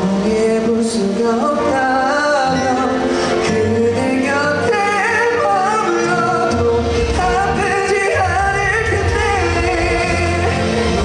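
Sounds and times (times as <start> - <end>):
backing music: 0.0 - 11.0
man singing into microphone: 0.0 - 11.0.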